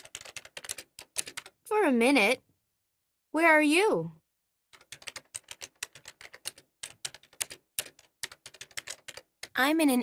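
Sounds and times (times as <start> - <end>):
keyboard typing: 0.0 - 1.6, 4.7 - 9.7.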